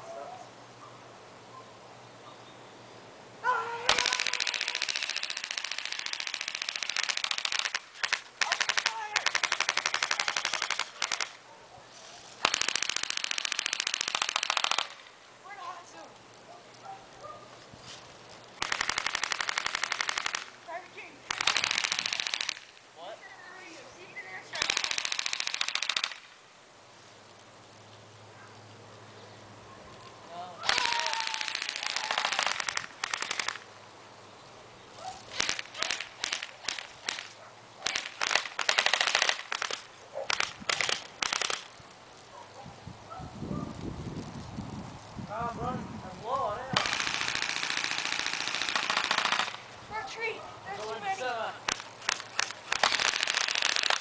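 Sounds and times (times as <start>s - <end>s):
automatic gunfire bursts: 3.9s - 11.4s, 18.6s - 20.5s, 21.3s - 22.6s, 24.6s - 26.2s, 46.8s - 49.6s, 51.7s - 54.0s.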